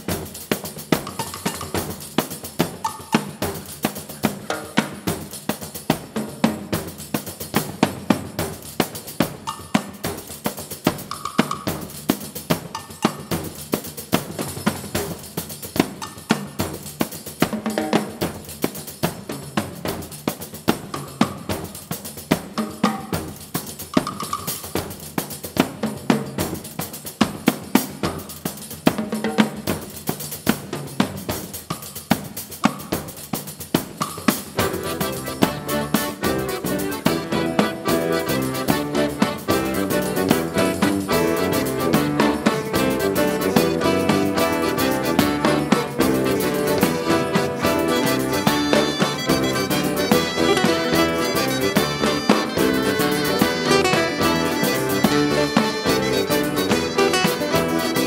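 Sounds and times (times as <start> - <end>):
percussion playing quick beat: 0.0 - 58.0.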